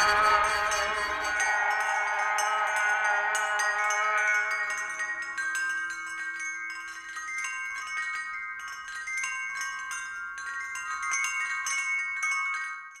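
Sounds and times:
wind chimes ringing: 0.0s - 13.0s.

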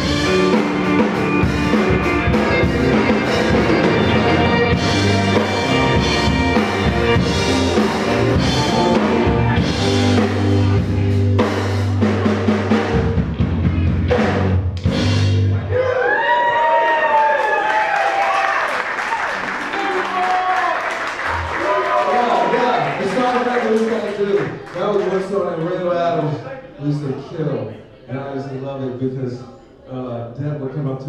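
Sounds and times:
live rock band playing: 0.0s - 15.7s
audience voices and crowd noise: 0.0s - 31.0s.

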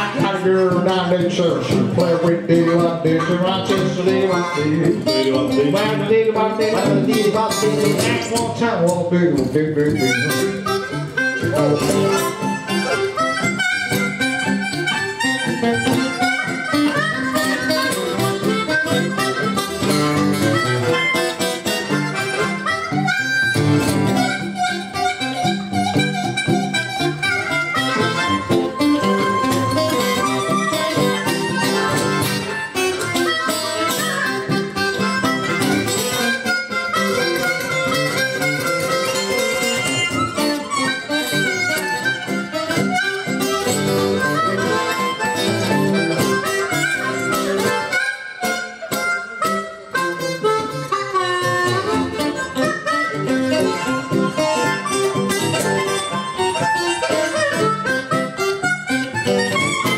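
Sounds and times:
blues harmonica solo: 0.0s - 59.9s
strummed acoustic guitar: 0.0s - 59.9s.

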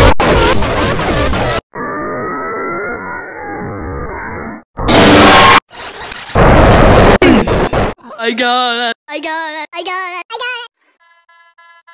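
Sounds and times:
harsh distorted noise: 0.0s - 2.2s, 4.8s - 8.0s.

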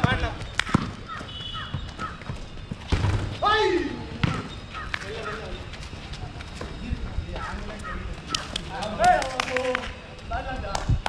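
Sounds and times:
basketball bouncing on asphalt: 0.0s - 3.4s, 4.1s - 5.5s.

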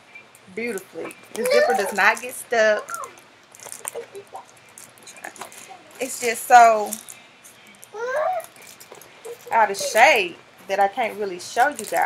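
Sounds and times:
case rustling in hands: 1.3s - 10.3s.

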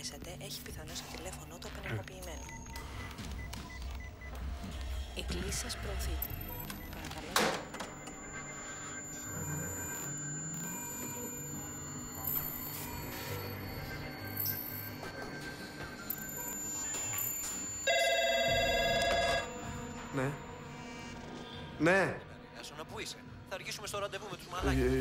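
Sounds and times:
soft background music: 0.0s - 25.0s
telephone ringing: 2.0s - 21.7s.

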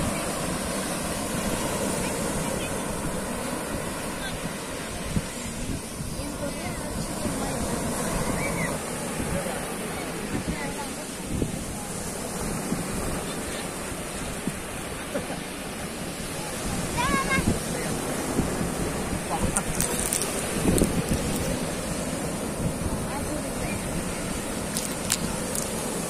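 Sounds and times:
sea surf breaking on beach: 0.0s - 26.0s.

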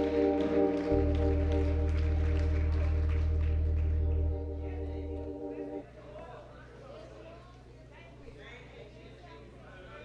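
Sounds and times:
church organ chord: 0.0s - 6.0s.

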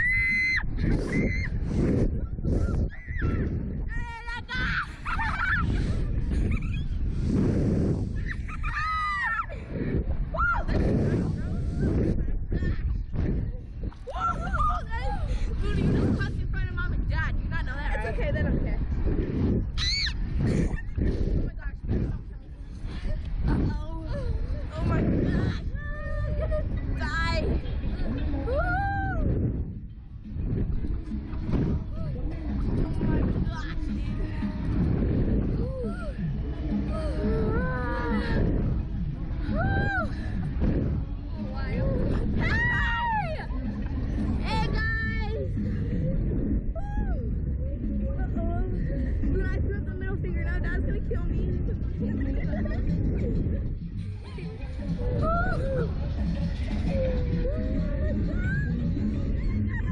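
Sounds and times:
wind rumble on microphone: 0.0s - 59.9s.

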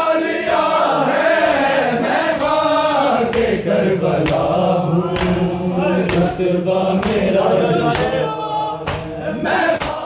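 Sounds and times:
men chanting in chorus: 0.0s - 10.0s
chest-beating slaps: 3.3s - 8.2s, 8.8s - 10.0s.

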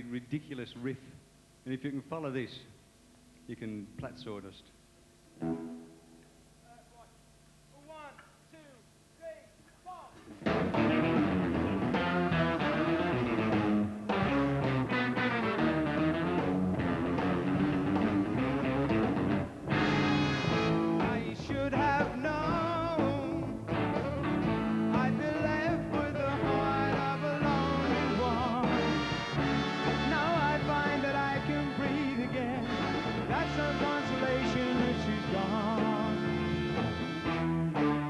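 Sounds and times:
rock band playing instrumental riff: 5.4s - 6.0s, 10.4s - 38.0s
faint sliding guitar notes: 5.4s - 6.2s.

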